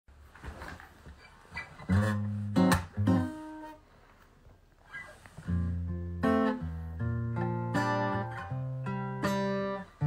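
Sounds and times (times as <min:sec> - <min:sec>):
faint handling sounds: 0:00.2 - 0:05.8
acoustic guitar chord strummed: 0:01.9 - 0:03.8, 0:05.6 - 0:10.0.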